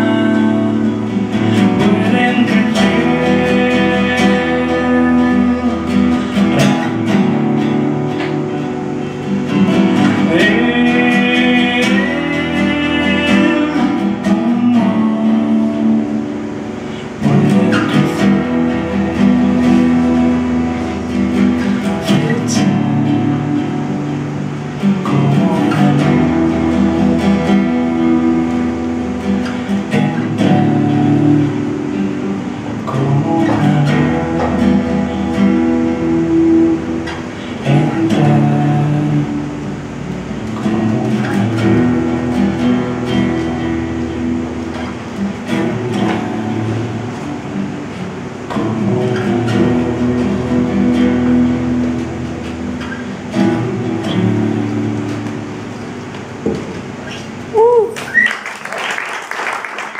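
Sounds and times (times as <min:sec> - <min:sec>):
acoustic guitar playing chords: 0:00.0 - 0:59.9.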